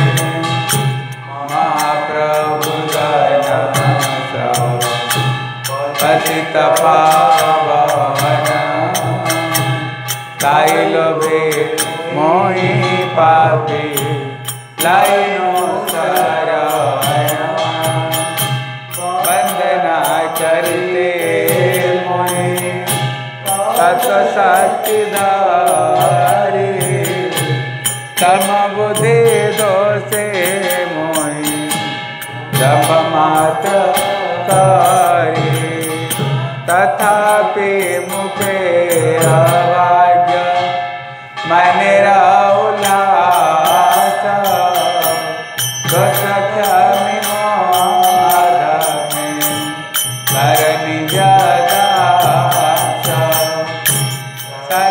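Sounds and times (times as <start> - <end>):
bright percussive strokes: 0.0 - 54.9
devotional chant singing: 0.0 - 54.9
musical accompaniment: 0.0 - 54.9.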